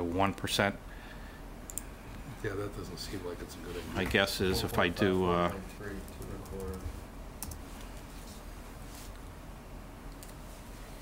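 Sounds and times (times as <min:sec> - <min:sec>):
computer keyboard typing: 0:06.1 - 0:06.8, 0:07.4 - 0:07.6, 0:10.1 - 0:10.4.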